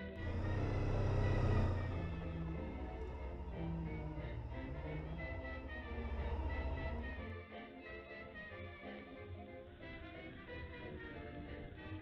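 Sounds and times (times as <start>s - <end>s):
motorcycle engine running: 0.0s - 7.2s
background music: 0.0s - 12.0s.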